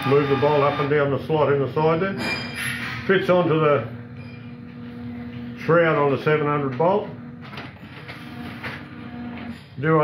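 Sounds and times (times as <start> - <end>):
steady low hum: 0.0 - 9.7.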